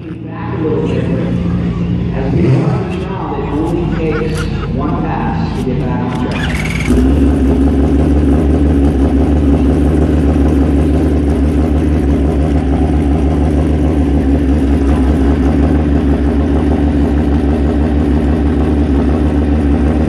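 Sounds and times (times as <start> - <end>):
motorcycle engine idling: 0.0 - 20.0.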